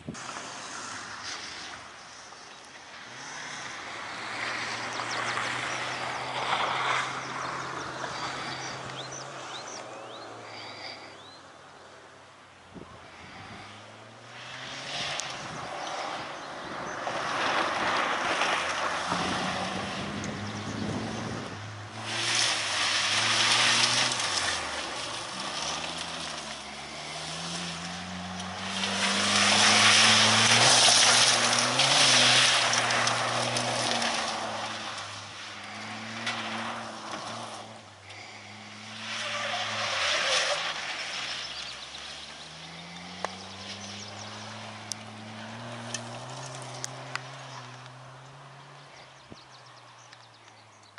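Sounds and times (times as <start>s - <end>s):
gravel spraying from tyres: 0.0s - 11.9s, 12.8s - 50.9s
race car engine revving: 13.2s - 48.8s.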